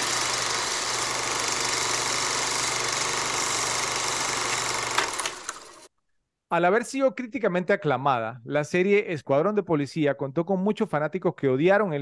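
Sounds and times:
film projector running: 0.0s - 5.9s.

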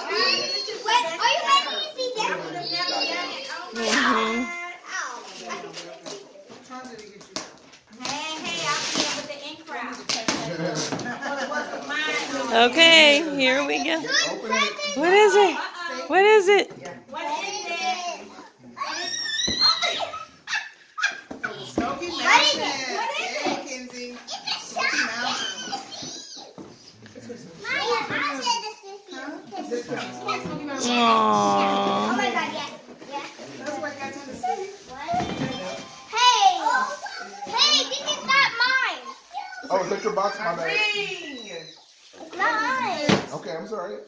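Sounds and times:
child's excited high-pitched voice: 30.7s - 32.7s, 36.1s - 40.0s
child babbling: 30.8s - 32.4s.

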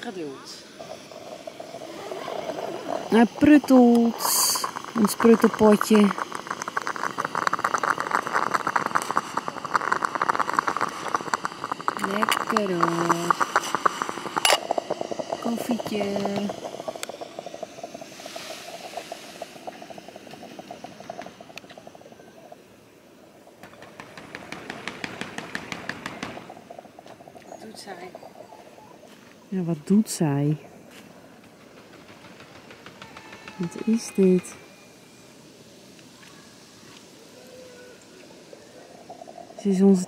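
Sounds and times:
faint steady tone: 0.0s - 23.7s, 33.4s - 40.0s
coffee pot sputtering and gurgling: 0.0s - 40.0s.

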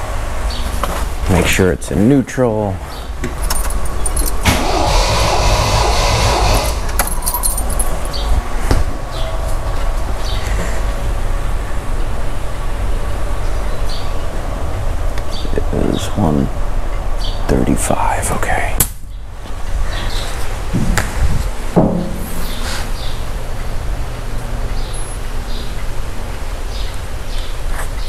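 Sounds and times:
engine cranking on starter motor: 4.1s - 8.2s.

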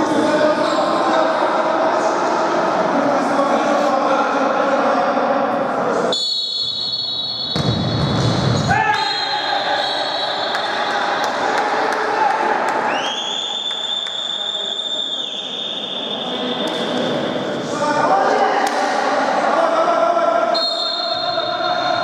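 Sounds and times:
players' voices echoing: 0.0s - 22.0s
referee's whistle blast: 6.1s - 8.1s, 8.7s - 10.8s.

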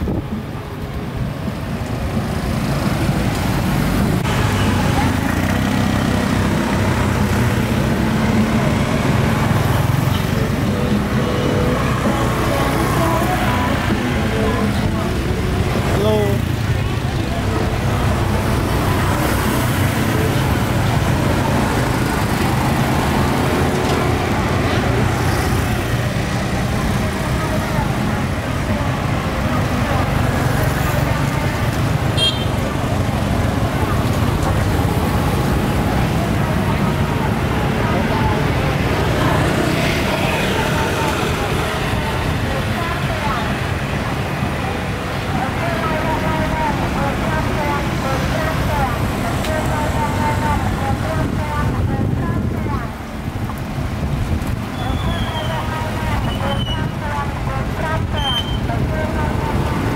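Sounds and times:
street traffic: 0.0s - 59.9s
people talking: 3.1s - 59.9s.

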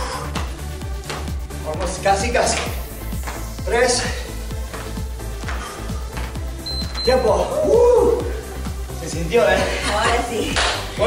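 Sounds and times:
electronic dance music: 0.6s - 5.3s
high timer beep: 6.6s - 7.4s.

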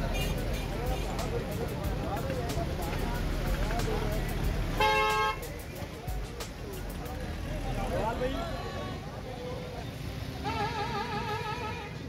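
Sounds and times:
crowd voices: 0.0s - 12.0s
traffic: 0.0s - 12.0s.

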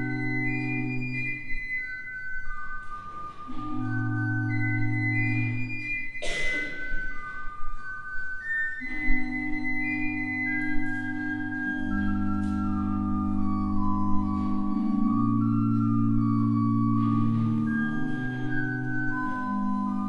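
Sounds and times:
church pipe organ chords: 0.0s - 20.0s.

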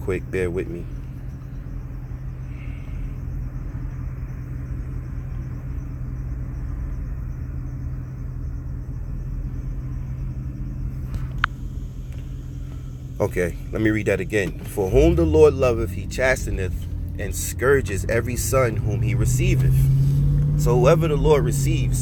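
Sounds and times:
low hum: 0.0s - 22.0s
low rumble: 0.0s - 22.0s.

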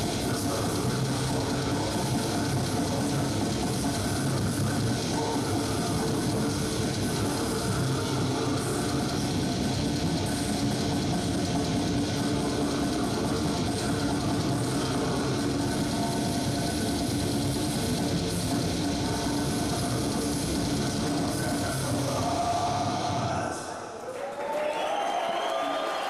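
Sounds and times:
death metal band playing: 0.0s - 23.4s.

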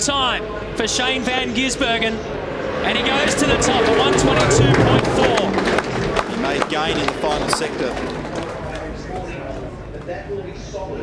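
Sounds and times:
indistinct talk: 0.0s - 11.0s
low background rumble: 0.5s - 9.0s.

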